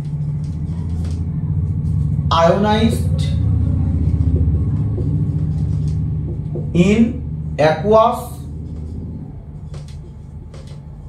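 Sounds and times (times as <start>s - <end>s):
low rumble with hum: 0.0s - 11.0s
person speaking: 2.3s - 5.3s, 6.3s - 8.7s.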